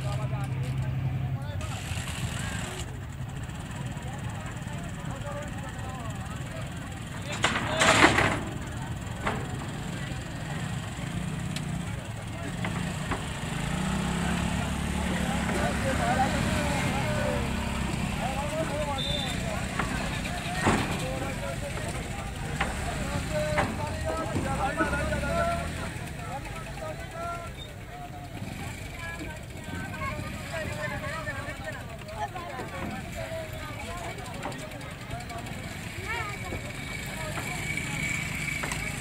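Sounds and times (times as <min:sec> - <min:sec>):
crowd chatter: 0:00.0 - 0:39.0
motorcycle engines idling: 0:00.0 - 0:39.0.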